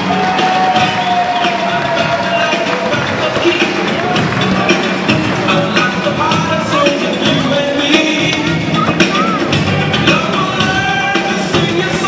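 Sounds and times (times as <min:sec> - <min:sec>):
music over public address system: 0:00.0 - 0:12.0
noisy crowd: 0:00.0 - 0:12.0.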